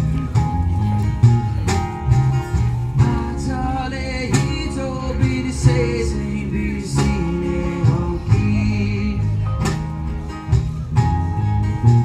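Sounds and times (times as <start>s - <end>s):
live band music: 0.0s - 12.0s
person singing: 3.0s - 9.8s.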